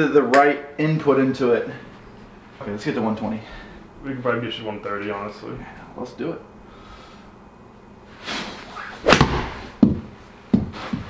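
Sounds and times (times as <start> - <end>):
golf club swing whoosh: 8.2 - 9.8
golf ball struck sharp crack: 9.0 - 9.7
sharp knocks: 9.1 - 10.7.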